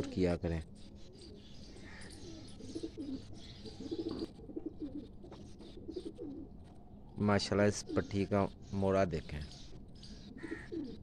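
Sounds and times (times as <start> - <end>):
pigeons cooing: 0.0 - 6.7, 7.6 - 8.6, 9.6 - 11.0.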